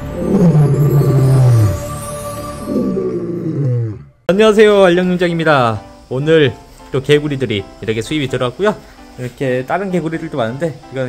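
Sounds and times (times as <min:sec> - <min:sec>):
lion roar: 0:00.0 - 0:02.0, 0:02.6 - 0:04.2.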